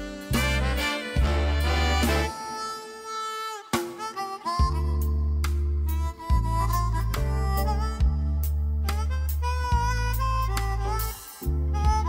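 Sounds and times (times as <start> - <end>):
low bass notes: 0.0 - 2.4, 4.6 - 12.0
harmonica melody: 0.0 - 12.0.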